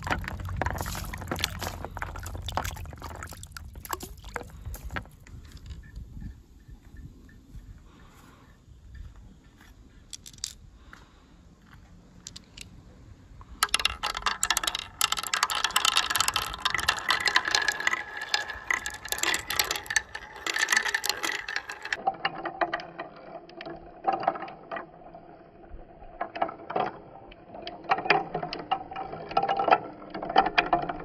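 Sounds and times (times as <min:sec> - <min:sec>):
marbles rattling in wooden run: 0:00.0 - 0:06.0, 0:10.1 - 0:10.6, 0:13.5 - 0:31.0.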